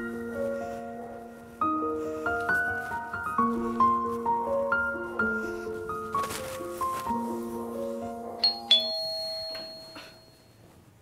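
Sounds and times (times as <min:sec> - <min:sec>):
soft piano-like background music: 0:00.0 - 0:11.0
doorbell two-note ding-dong: 0:08.4 - 0:10.5.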